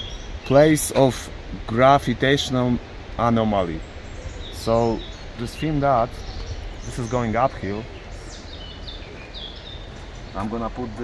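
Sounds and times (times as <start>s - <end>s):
low background rumble: 0.0s - 11.0s
songbird singing: 0.0s - 11.0s.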